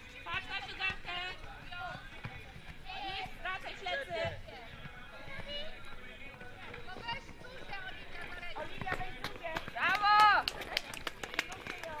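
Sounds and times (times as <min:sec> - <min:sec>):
hand clapping: 0:08.9 - 0:12.0.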